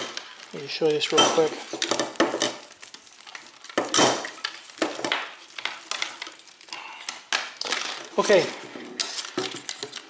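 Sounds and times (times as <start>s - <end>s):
wires rustling: 0.0s - 10.0s.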